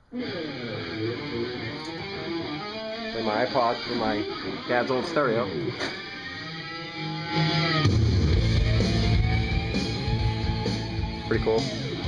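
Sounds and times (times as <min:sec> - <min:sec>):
rock music with guitar on stereo: 0:00.0 - 0:12.0.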